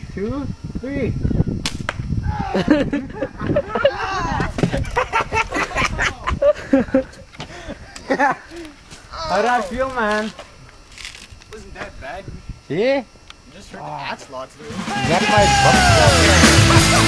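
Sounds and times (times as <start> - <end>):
air gun firing crack: 1.6 - 2.1
people laughing: 2.4 - 8.8, 15.2 - 17.0.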